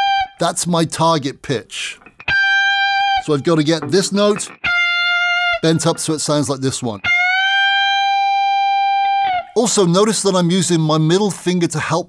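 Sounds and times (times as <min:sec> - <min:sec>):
electric guitar note bent up: 0:02.0 - 0:05.7.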